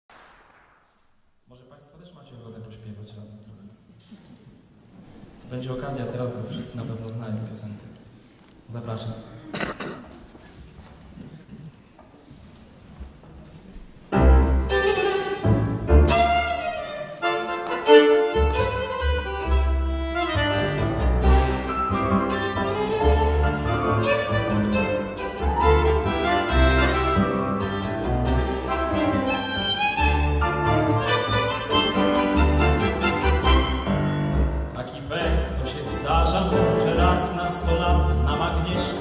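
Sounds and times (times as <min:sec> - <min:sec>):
piano: 0:14.0 - 0:39.0
double bass notes: 0:14.1 - 0:39.0
violin melody: 0:14.1 - 0:39.0
accordion: 0:14.2 - 0:39.0.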